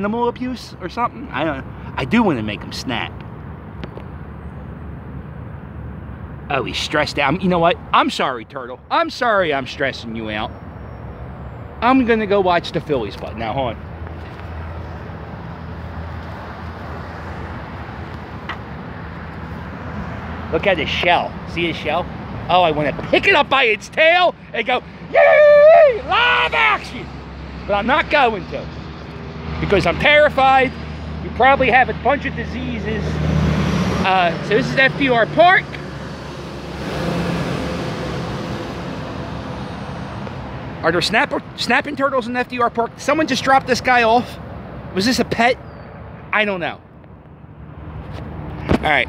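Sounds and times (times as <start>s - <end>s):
low rumble of road traffic: 0.0s - 49.0s
vehicle passing: 9.5s - 49.0s.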